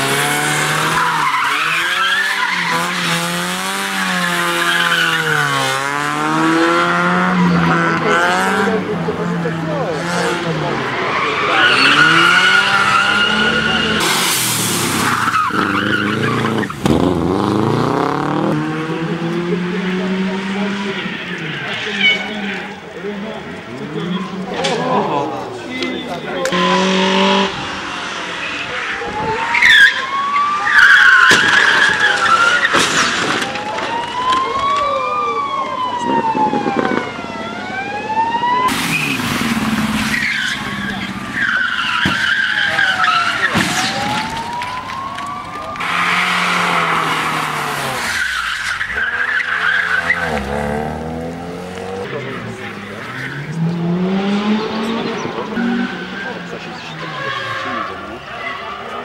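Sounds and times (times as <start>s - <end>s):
car engine revving: 0.0s - 24.7s, 26.4s - 33.9s, 38.6s - 59.0s
tyres squealing: 0.5s - 3.4s, 4.0s - 5.8s, 10.0s - 17.6s, 38.7s - 53.6s.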